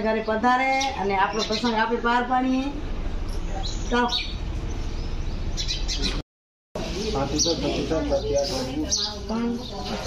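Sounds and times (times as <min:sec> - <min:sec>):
birds chirping: 0:00.0 - 0:06.2, 0:06.8 - 0:10.0.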